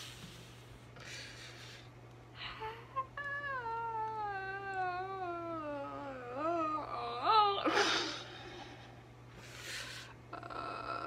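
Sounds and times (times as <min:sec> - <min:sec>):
woman wailing: 0:02.4 - 0:08.2.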